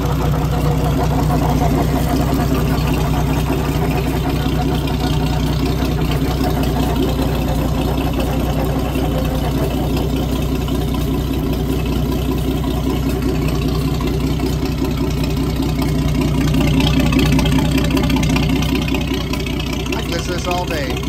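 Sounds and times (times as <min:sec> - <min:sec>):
marine engine running: 0:00.0 - 0:21.0.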